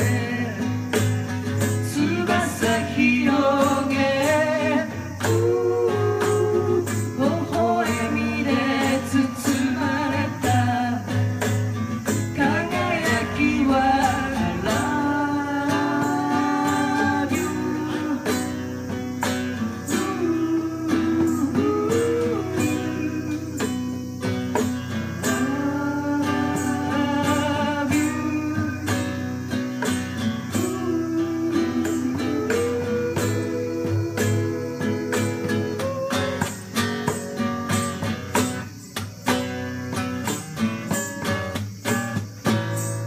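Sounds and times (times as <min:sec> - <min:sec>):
person singing: 0:00.0 - 0:01.1, 0:01.7 - 0:36.8
acoustic guitar strumming: 0:00.0 - 0:43.0
light percussion: 0:00.0 - 0:43.0.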